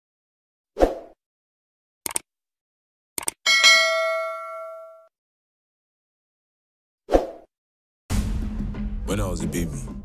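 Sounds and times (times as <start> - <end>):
mouse clicks: 3.2 - 3.4
notification bell ding: 3.5 - 5.1.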